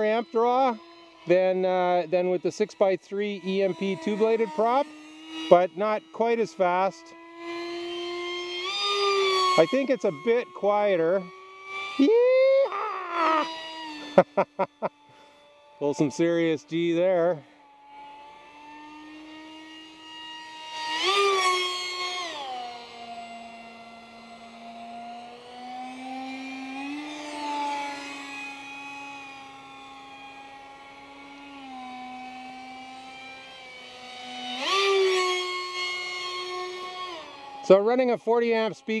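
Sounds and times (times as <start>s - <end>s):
electric motor whining: 0.0s - 39.0s.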